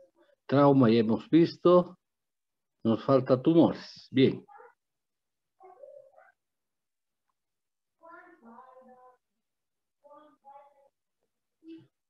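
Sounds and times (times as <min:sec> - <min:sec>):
faint high-pitched cry: 0:05.6 - 0:06.4.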